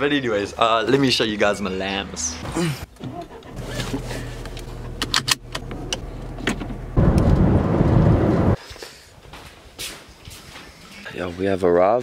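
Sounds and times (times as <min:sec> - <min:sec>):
car engine and road hum: 0:00.0 - 0:08.6
loud rumbling noise: 0:05.8 - 0:08.6.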